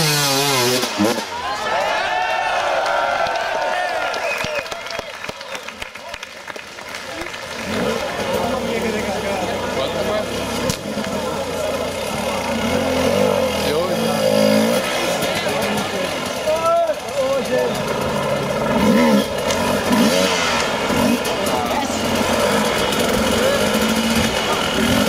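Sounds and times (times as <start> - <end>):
dirt bike engine revving: 0.0 - 1.6, 7.3 - 25.0
spectators shouting: 0.6 - 6.1, 14.7 - 18.6.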